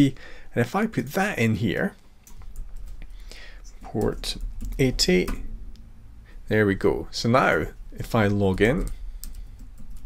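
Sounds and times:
keyboard typing: 3.8s - 5.4s, 8.6s - 10.0s.

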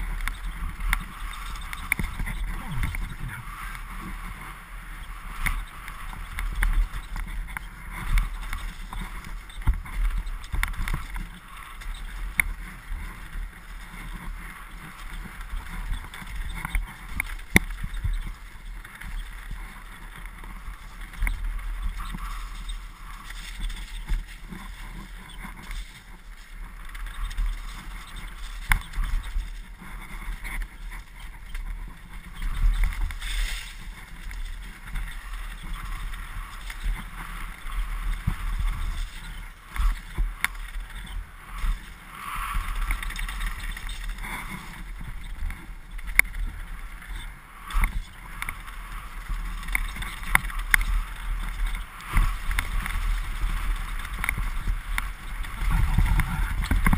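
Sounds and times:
bike tyre noise on dirt: 0.0s - 56.9s
wind rushing on microphone: 0.0s - 56.9s.

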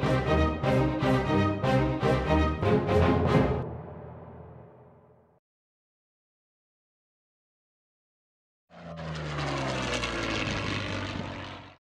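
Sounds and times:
propeller aircraft passing by: 8.7s - 11.8s.

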